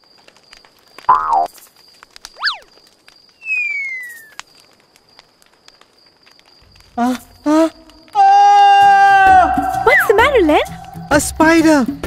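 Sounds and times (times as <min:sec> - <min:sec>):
faint crackles: 0:00.0 - 0:08.4
up-and-down whistle: 0:02.4 - 0:02.7, 0:03.4 - 0:04.4
high chirring: 0:03.4 - 0:04.4
long falling whistle: 0:03.4 - 0:04.4.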